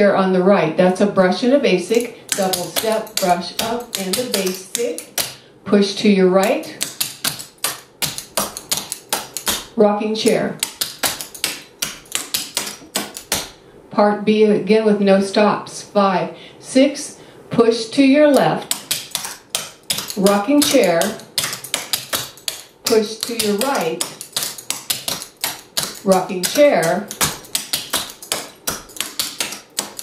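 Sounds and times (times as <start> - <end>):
tap shoes clicking on wooden floor: 2.3 - 5.4, 6.6 - 9.7, 10.6 - 13.5, 18.4 - 30.0.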